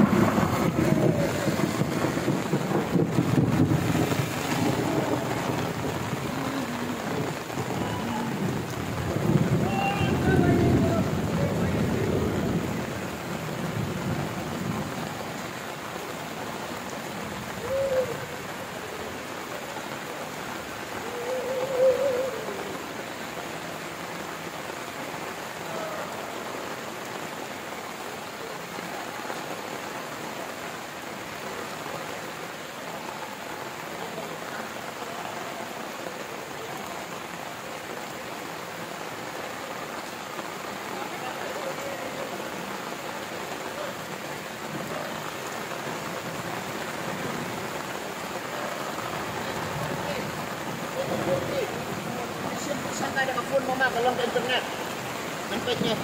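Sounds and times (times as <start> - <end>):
heavy rain pouring: 0.0 - 56.0.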